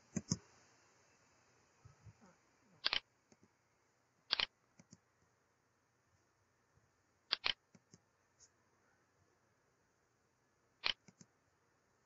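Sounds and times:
computer mouse click: 2.8 - 3.5, 4.3 - 5.0, 7.3 - 8.0, 10.8 - 11.3.

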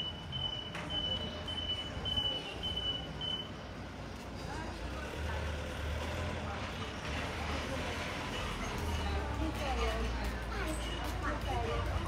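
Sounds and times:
truck reversing alarm beeping: 0.0 - 3.7
street noise: 0.0 - 12.0.

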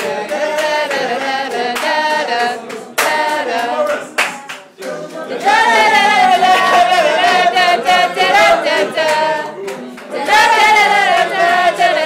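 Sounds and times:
sharp hand clap: 0.0 - 5.6, 6.2 - 12.0
group of voices singing: 0.0 - 12.0.

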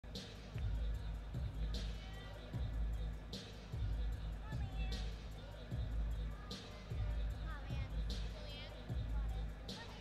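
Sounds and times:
music with heavy bass beat: 0.0 - 10.0.

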